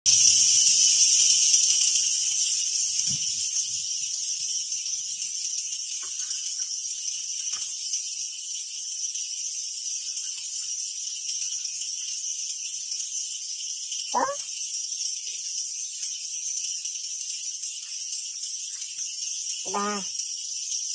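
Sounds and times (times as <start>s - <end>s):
high-pitched hiss: 0.1s - 20.9s.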